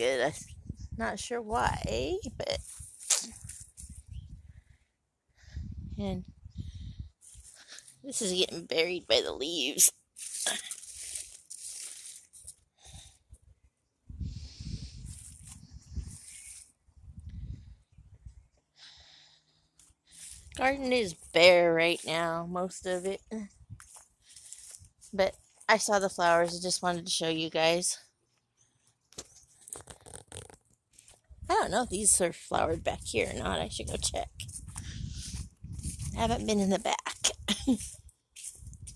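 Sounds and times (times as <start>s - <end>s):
footsteps on leaves and grass: 2.6s - 4.1s, 7.2s - 8.0s, 10.0s - 12.6s, 15.0s - 16.7s, 19.8s - 26.9s, 30.9s - 38.9s
dry leaves rustling and crackling: 10.1s - 12.6s.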